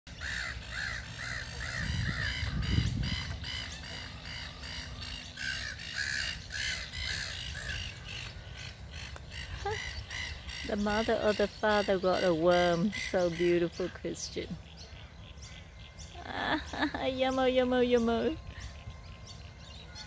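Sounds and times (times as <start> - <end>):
bird calling crow-like: 0.1 - 16.2
wind rumble on microphone: 0.2 - 4.8.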